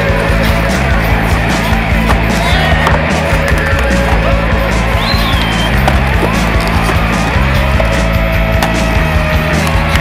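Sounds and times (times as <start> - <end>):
music with bass line: 0.0 - 10.0
skateboard wheels rolling on concrete: 0.0 - 10.0
skateboard clacking on concrete: 2.0 - 4.2, 5.4 - 7.1.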